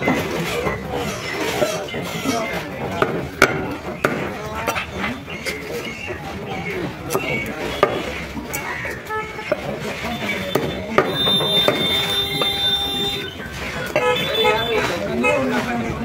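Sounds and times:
voices talking: 0.0 - 16.0.

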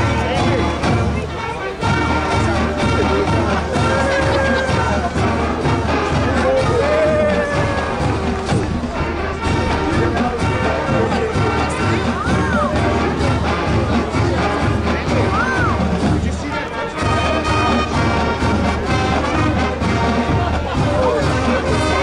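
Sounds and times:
marching band brass: 0.0 - 22.0
steady drum beat: 0.0 - 22.0.

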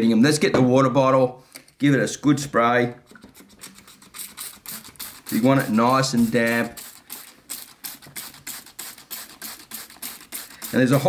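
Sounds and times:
spray bottle hissing: 3.6 - 11.0.

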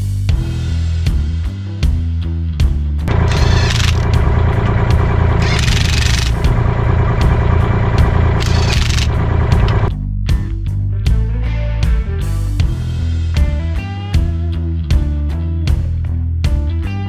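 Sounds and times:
rock music: 0.0 - 17.0
impact wrench hammering: 3.1 - 9.9.

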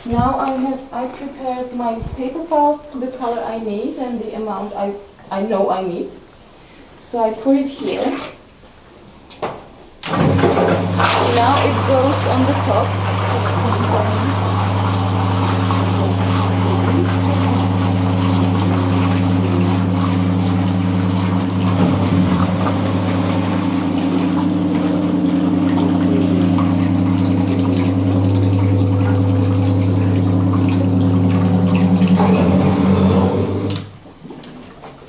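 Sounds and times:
electric pump hum: 10.0 - 35.0
rushing water: 10.4 - 35.0.

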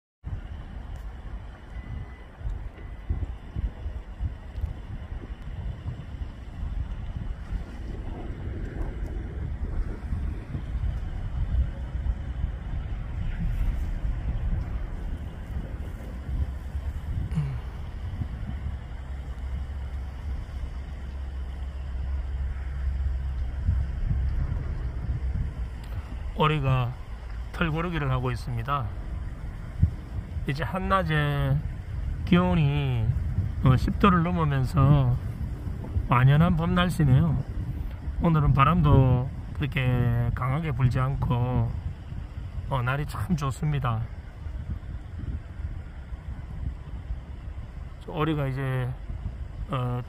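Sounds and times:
wind buffeting microphone: 0.2 - 50.0.

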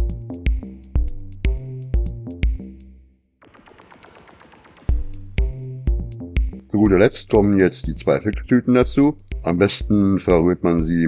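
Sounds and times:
electronic music with drum-machine beat: 0.0 - 2.8, 3.4 - 11.0.

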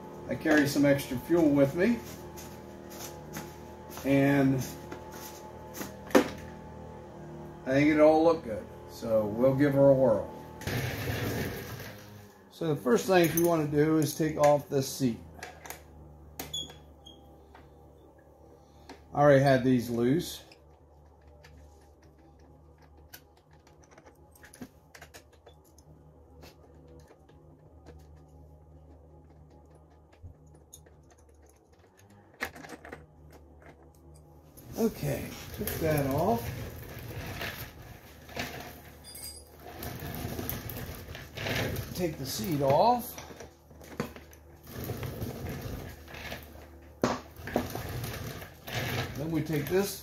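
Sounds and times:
steady low hum: 0.0 - 50.0
bolts clicking and tapping: 20.5 - 34.3.

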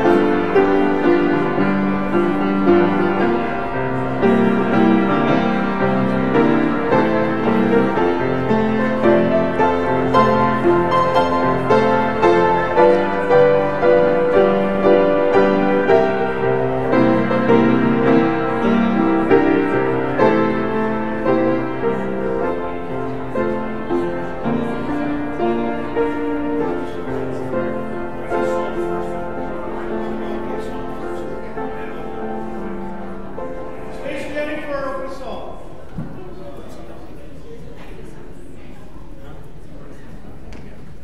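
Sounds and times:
grand piano playing: 0.0 - 35.4.

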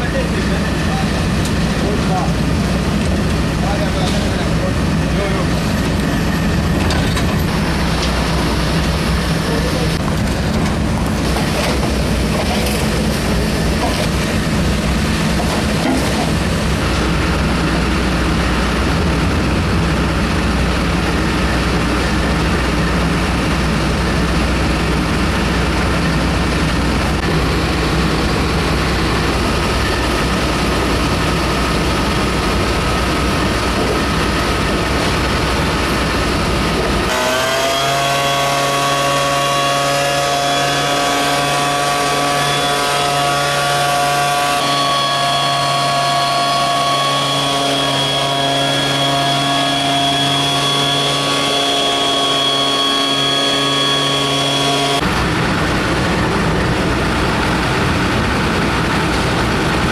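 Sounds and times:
motorised sprayer running: 39.5 - 59.9.

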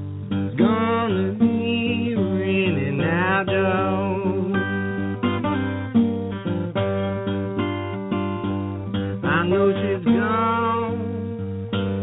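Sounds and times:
acoustic guitar: 0.0 - 12.0
blues singing: 0.0 - 12.0.

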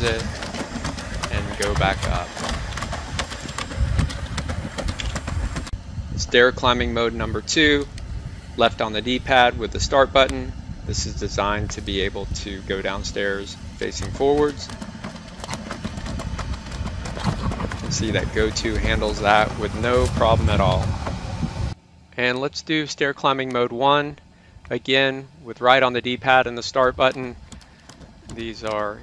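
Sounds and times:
steady low rumble: 0.0 - 29.0
low rumble: 15.8 - 21.8.

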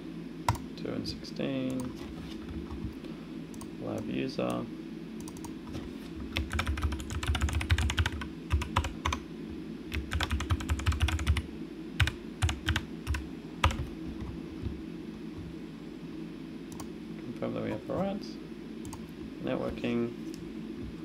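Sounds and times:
typing on computer keyboard: 6.4 - 9.2, 9.9 - 11.4, 12.0 - 13.9.

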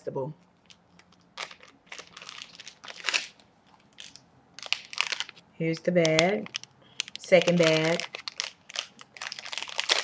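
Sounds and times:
plastic bag crinkling: 0.6 - 10.0
sharp plastic crackles: 0.6 - 10.0.

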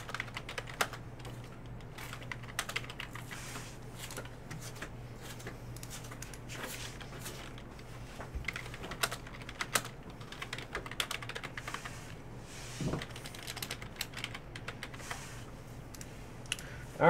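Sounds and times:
typing on computer keyboard: 0.0 - 3.3, 8.4 - 11.9, 13.0 - 15.1.

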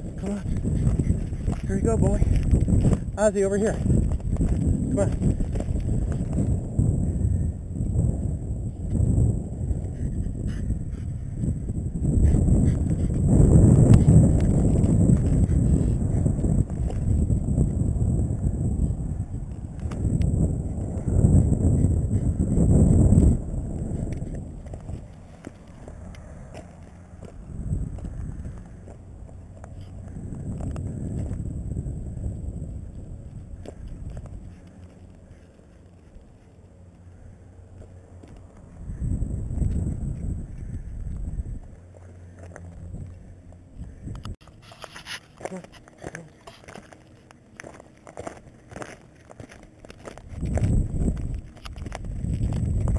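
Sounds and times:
wind rumbling on microphone: 0.0 - 52.9
footsteps crunching on rock: 0.2 - 6.6, 44.4 - 52.9.

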